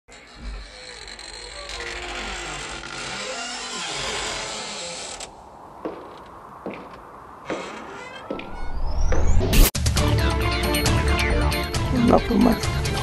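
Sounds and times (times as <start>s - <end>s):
long wavering creak: 0.1s - 6.4s, 7.4s - 9.4s.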